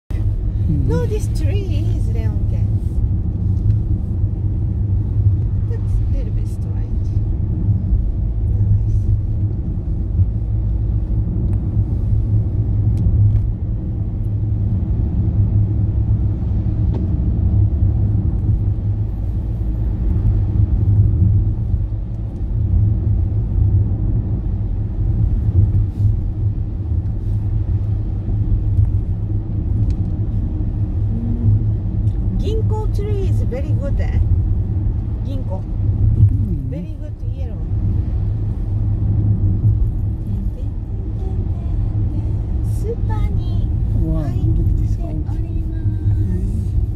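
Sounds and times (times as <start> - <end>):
car interior road rumble: 0.1 - 46.9.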